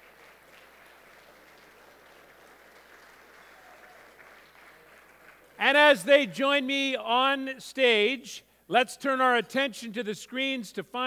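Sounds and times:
audience applause: 0.0s - 5.6s.

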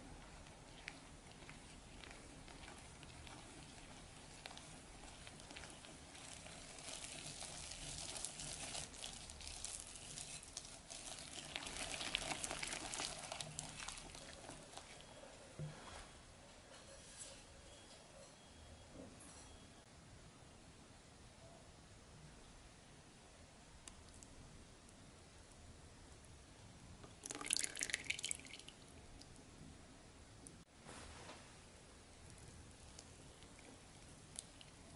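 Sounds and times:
melted chocolate dripping splashing: 0.0s - 15.1s, 27.0s - 29.4s, 32.2s - 34.9s.

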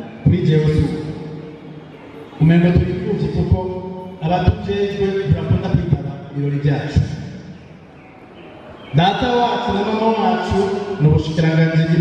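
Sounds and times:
man's voice through a microphone: 0.0s - 7.7s, 8.8s - 12.0s.

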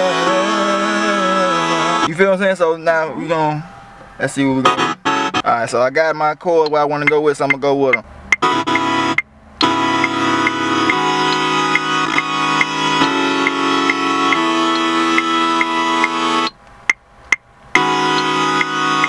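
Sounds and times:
synth chords: 0.0s - 5.9s, 7.9s - 16.6s, 17.7s - 19.0s
light beat tick: 6.6s - 18.8s.

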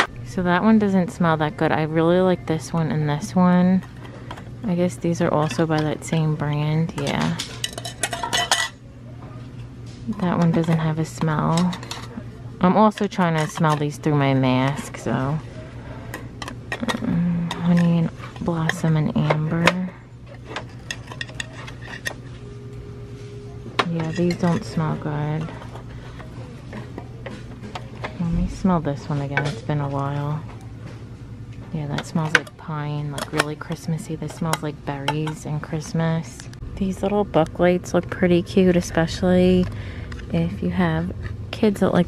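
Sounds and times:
low steady hum: 0.0s - 42.0s
glass jars clinking: 7.0s - 8.8s, 20.5s - 22.2s, 23.8s - 25.8s.

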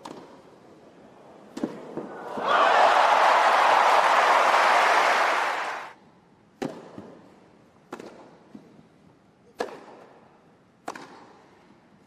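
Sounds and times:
crowd applauding and cheering: 2.1s - 6.0s.

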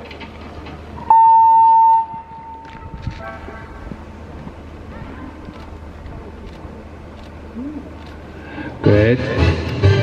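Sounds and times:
loud electronic beep: 1.1s - 2.6s.

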